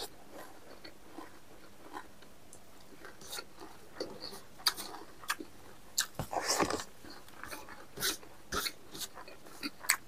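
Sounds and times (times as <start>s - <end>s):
man chewing with lip smacking: 0.0s - 10.0s.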